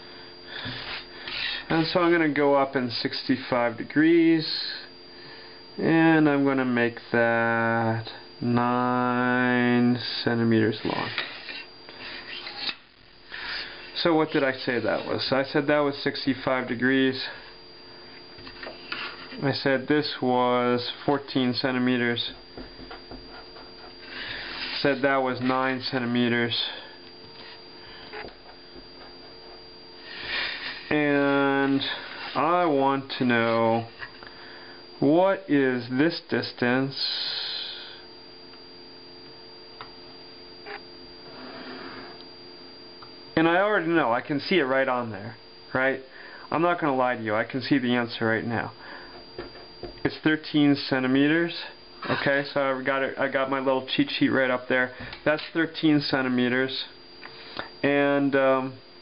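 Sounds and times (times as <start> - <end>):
faint hum: 0.0 - 59.0
ruler and marker scraping paper: 0.7 - 1.6, 11.0 - 13.8, 18.8 - 19.3, 24.1 - 24.8, 30.1 - 30.9, 32.0 - 32.4
soft paper scrape: 18.8 - 19.4, 24.0 - 24.9, 30.0 - 30.9, 32.0 - 32.4, 41.3 - 42.2.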